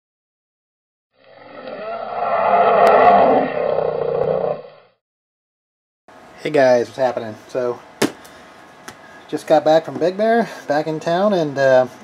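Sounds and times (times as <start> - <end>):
roar-like sound effect: 1.2 - 5.0.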